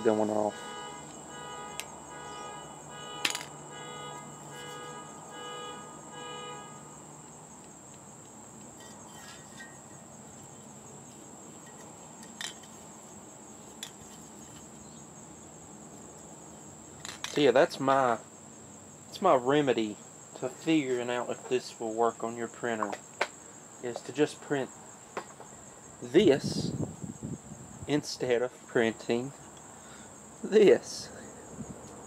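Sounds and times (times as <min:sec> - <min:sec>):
car alarm pulsing tones: 0:00.0 - 0:07.1
crickets chirring: 0:00.0 - 0:32.0.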